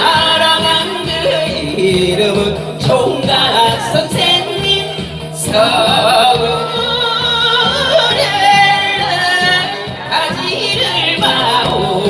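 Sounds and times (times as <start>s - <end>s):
dance music with steady beat: 0.0s - 12.0s
woman singing into microphone: 0.0s - 12.0s.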